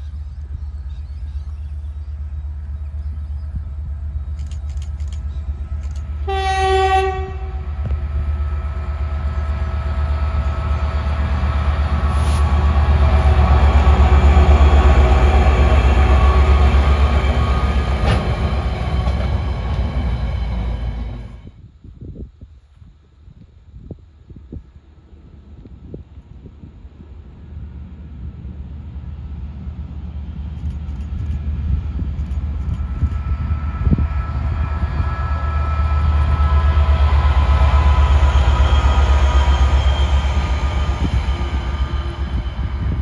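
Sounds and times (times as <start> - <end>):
diesel locomotive engine rumble: 0.0 - 21.8, 25.1 - 43.0
train wagons passing: 1.5 - 21.5, 27.8 - 43.0
train horn blast: 6.2 - 8.6, 33.2 - 43.0.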